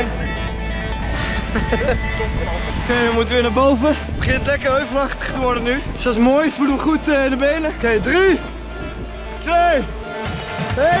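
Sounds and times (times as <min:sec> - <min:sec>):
wind buffeting microphone: 0:03.9 - 0:09.4
man speaking: 0:10.7 - 0:11.0.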